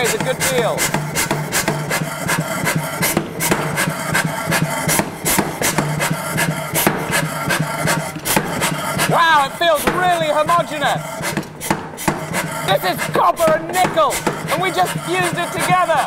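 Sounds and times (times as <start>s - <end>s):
power hammer striking metal: 0.0s - 16.0s
steady low hum: 0.0s - 16.0s.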